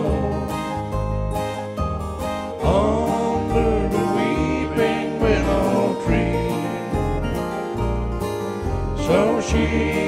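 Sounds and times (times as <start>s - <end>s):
plucked acoustic guitar: 0.0s - 10.0s.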